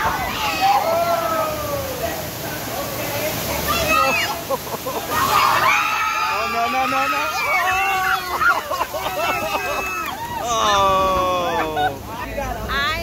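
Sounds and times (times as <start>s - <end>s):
water rushing and splashing: 0.0s - 13.0s
people calling out: 3.6s - 12.1s.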